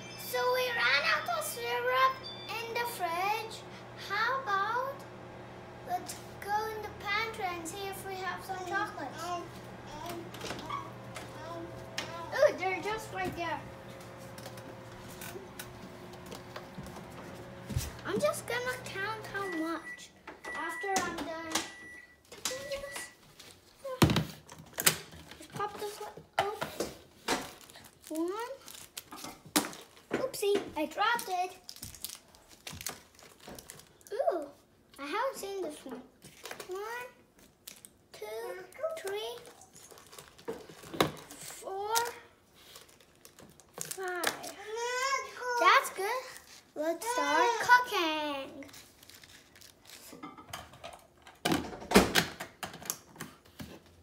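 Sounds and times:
faint hum: 0.0 - 23.2
foil wrappers crinkling: 27.1 - 30.1, 31.0 - 34.2, 36.2 - 38.1, 38.7 - 44.8, 46.2 - 47.2, 48.5 - 50.2
child's wordless vocal sounds: 46.8 - 47.9.

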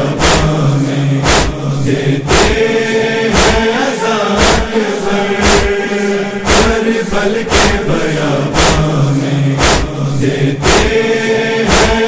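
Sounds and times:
chorus chanting a long note: 0.0 - 12.0
chest-beating strikes: 1.2 - 1.6, 2.3 - 2.7, 3.3 - 8.9, 9.6 - 10.0, 10.6 - 11.0, 11.7 - 12.0.

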